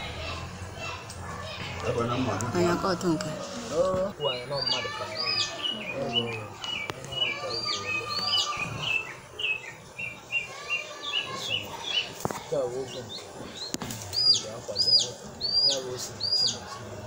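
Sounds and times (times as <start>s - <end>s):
small bird chirping: 4.2s - 16.8s.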